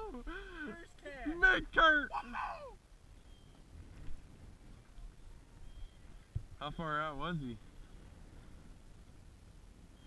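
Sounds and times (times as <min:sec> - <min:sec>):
man whooping: 0:01.8 - 0:02.8
wind rumble on microphone: 0:02.8 - 0:10.0.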